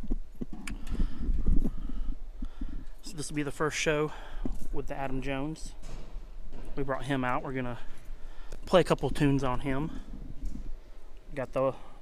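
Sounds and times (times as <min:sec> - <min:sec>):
low camera handling rumble: 0:07.9 - 0:11.3.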